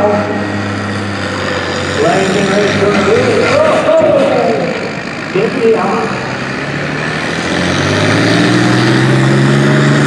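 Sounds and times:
tractor engine idling: 0.0 - 7.8
man calling out: 5.4 - 6.2.

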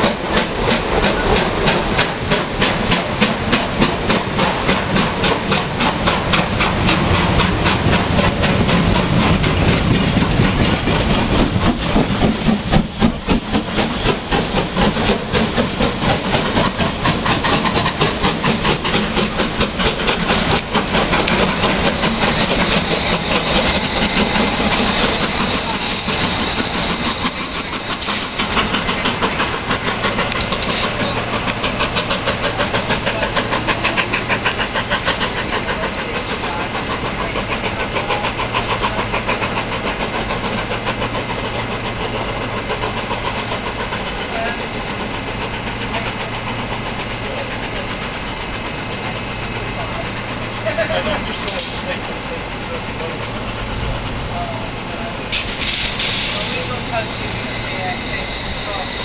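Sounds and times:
steam locomotive exhaust beats: 0.0 - 59.0
thin high squeal: 24.4 - 28.4.

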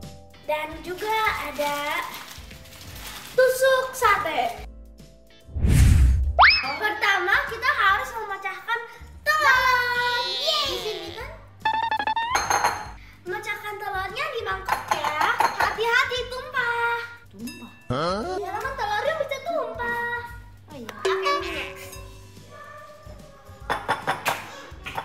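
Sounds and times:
child's voice: 0.4 - 2.1, 3.4 - 4.7, 6.6 - 11.4, 13.2 - 17.2, 18.4 - 21.9
bouncy children's music: 6.4 - 25.0.

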